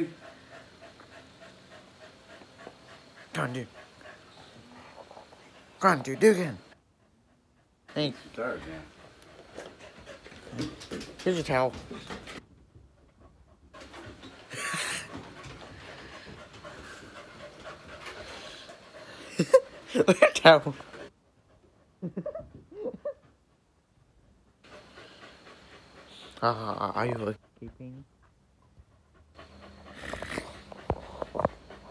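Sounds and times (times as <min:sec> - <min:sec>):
dog panting: 0:00.0 - 0:22.3, 0:23.0 - 0:31.9.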